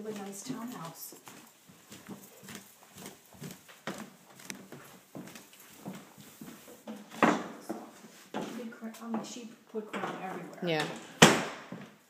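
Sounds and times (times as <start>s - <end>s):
footsteps on hardwood floor: 0.0s - 12.0s.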